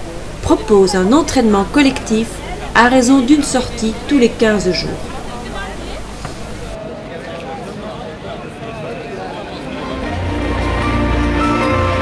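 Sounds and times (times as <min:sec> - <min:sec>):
steady noisy hiss: 0:00.0 - 0:06.9
people chattering: 0:00.0 - 0:10.6.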